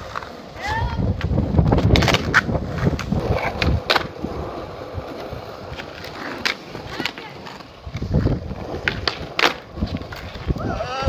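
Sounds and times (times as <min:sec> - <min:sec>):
skateboard wheels rolling on asphalt: 0:00.0 - 0:11.0.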